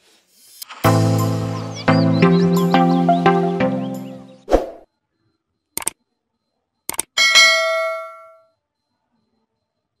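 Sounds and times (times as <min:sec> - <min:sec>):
quick clicks: 0:05.8 - 0:06.0, 0:06.9 - 0:07.2
ringing metallic clang: 0:07.2 - 0:08.4.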